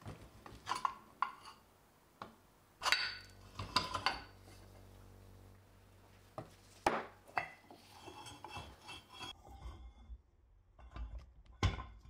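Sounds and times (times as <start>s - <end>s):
metal scraping and rattling on wood: 7.3s - 9.9s.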